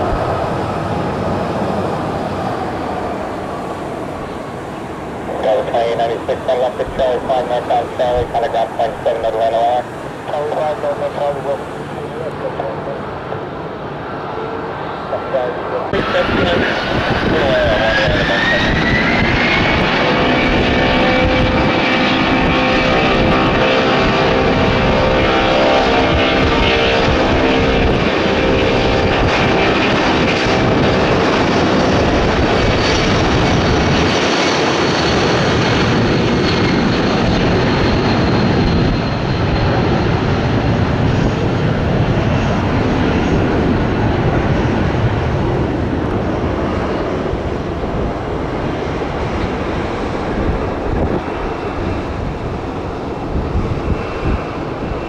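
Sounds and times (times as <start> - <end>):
jet engines spooling up: 0.0 - 55.0.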